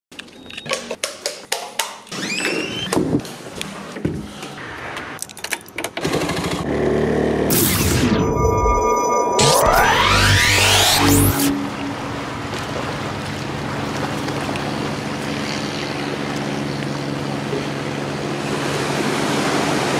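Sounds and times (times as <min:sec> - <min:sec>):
whoosh: 0:07.5 - 0:12.1.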